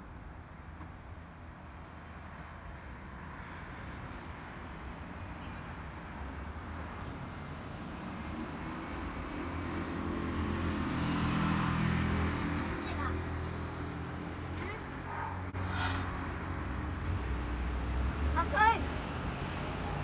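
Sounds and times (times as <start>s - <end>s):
steady hum of cars: 0.0s - 20.0s
vehicle with low engine passing: 6.2s - 20.0s.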